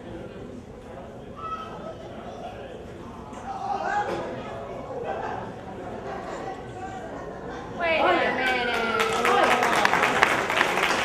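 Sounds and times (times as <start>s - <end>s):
murmur of audience voices: 0.0s - 11.0s.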